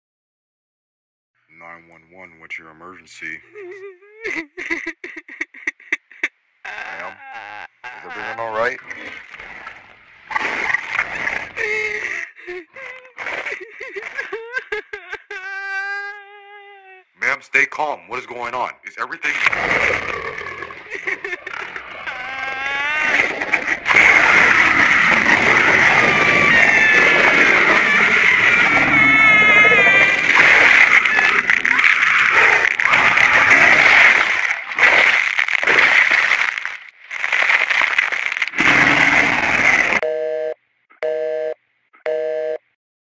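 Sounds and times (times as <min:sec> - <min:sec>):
raspy creature growl: 0:06.7 - 0:14.4, 0:19.2 - 0:36.5, 0:38.5 - 0:40.0
harsh distorted noise: 0:19.2 - 0:40.0
telephone busy signal: 0:40.0 - 0:42.6.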